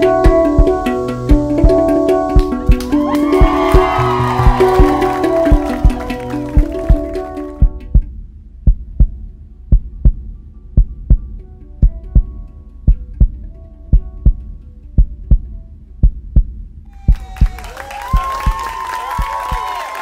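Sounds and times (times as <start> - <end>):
faint sustained musical tones: 0.0 - 16.3
heartbeat thumps: 0.3 - 19.7.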